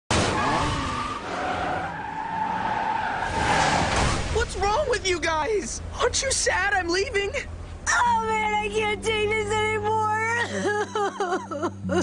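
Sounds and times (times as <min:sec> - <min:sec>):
car tires screeching: 0:00.1 - 0:08.0.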